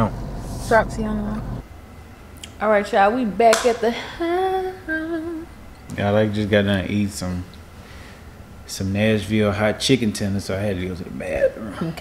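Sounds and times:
woman humming: 3.9s - 5.5s.

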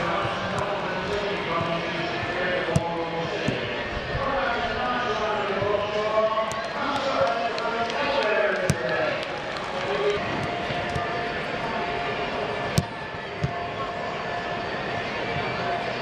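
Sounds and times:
boot kicking football: 0.0s - 4.4s, 5.4s - 7.2s, 8.6s - 9.1s, 10.1s - 11.3s, 12.7s - 13.8s
players talking and calling: 0.0s - 16.0s.

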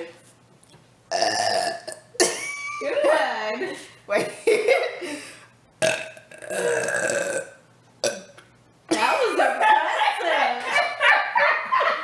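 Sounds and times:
long loud burp: 1.1s - 2.3s, 5.8s - 8.3s.

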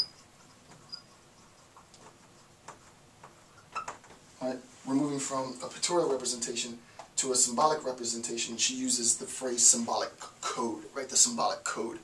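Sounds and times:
marker scratching on whiteboard: 0.0s - 4.0s
marker squeaks: 0.0s - 4.1s.

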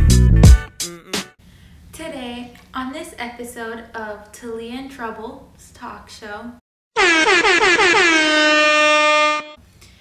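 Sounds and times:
horn-like sound effect: 7.0s - 9.6s.

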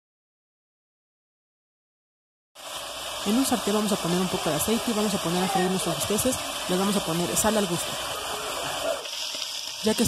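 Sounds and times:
meat sizzling in hot oil: 2.6s - 10.0s
woman speaking: 3.2s - 8.0s.

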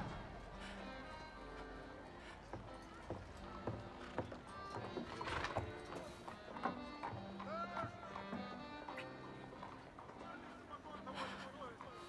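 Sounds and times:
background music: 0.0s - 12.0s
hooves clip-clopping on wooden boards: 0.0s - 12.0s.

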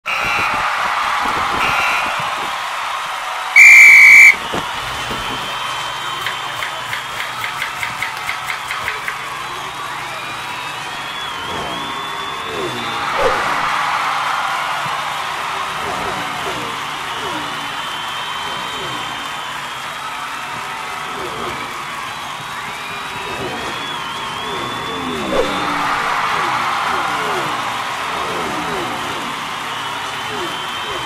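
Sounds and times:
high whistle blast: 3.6s - 4.5s.

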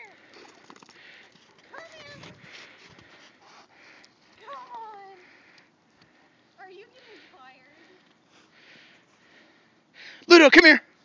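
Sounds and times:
dog panting: 0.1s - 4.6s.

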